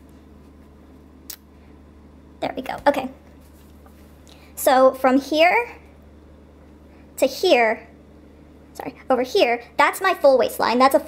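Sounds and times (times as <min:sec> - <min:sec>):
steady low hum: 0:00.0 - 0:11.0
soft fabric rustle: 0:03.2 - 0:04.2.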